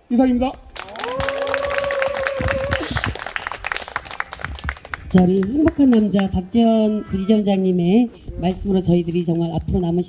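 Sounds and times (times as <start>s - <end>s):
audience applause: 0.7s - 6.3s.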